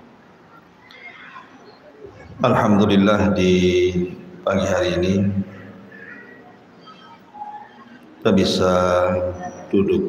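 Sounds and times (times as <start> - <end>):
low background hiss: 0.0 - 10.0.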